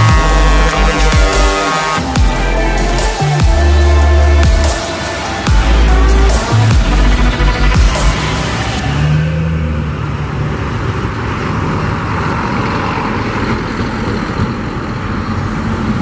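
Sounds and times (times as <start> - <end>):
diesel truck driving away: 0.0 - 16.0
road and traffic noise: 0.0 - 16.0.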